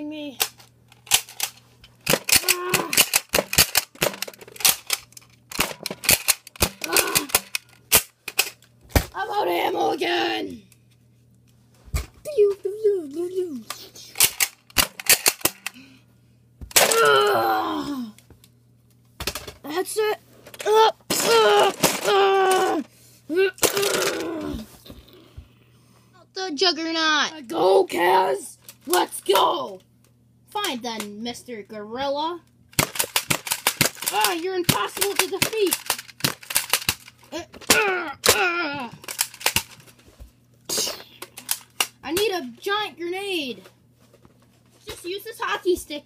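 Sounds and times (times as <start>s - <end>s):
child crying out: 2.3s - 3.0s, 6.8s - 7.4s, 16.8s - 18.2s, 20.6s - 24.7s, 37.3s - 39.0s
foam darts hitting plastic bricks: 32.8s - 39.8s.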